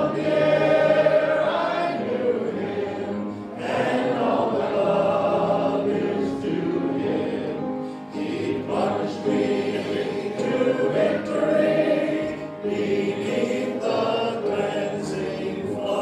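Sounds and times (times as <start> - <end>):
congregation singing gospel chorus: 0.0 - 16.0.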